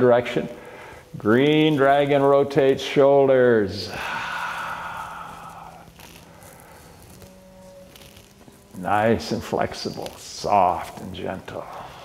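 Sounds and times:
faint steady hum: 0.0s - 12.0s
breathy exhale: 0.5s - 1.2s, 3.9s - 7.4s.

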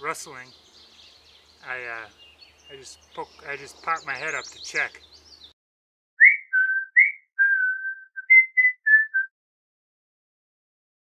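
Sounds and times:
person whistling a tune: 6.2s - 9.3s.

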